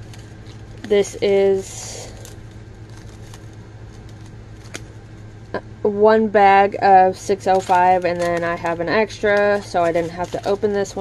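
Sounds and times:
plastic bags crinkling: 0.0s - 5.1s, 7.4s - 11.0s
steady low hum: 0.0s - 11.0s.

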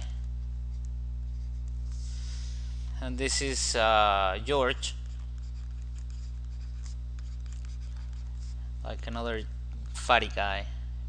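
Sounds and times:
low electrical hum: 0.0s - 11.0s
pen scratching on drawing tablet: 4.5s - 8.6s.

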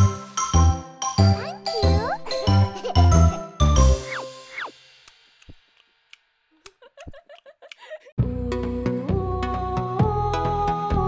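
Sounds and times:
bouncy children's song music: 0.0s - 4.7s.

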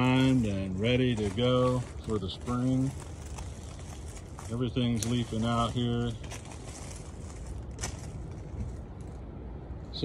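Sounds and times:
low rumble of background noise: 0.0s - 10.0s.

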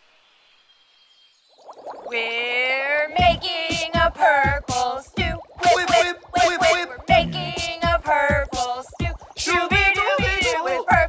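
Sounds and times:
music: 3.2s - 11.0s.

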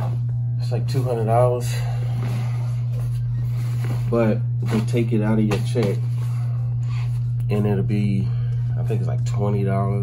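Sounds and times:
steady low hum: 0.0s - 10.0s
nylon bag rustling: 2.0s - 5.1s.

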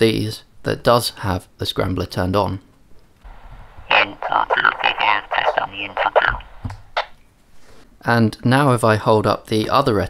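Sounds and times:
radio hiss: 3.3s - 7.2s
garbled voice over radio: 3.9s - 7.1s.

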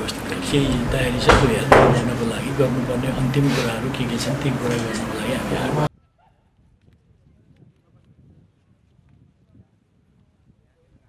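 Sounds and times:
faint distant voices: 0.0s - 5.9s
low rumble: 0.3s - 4.6s.

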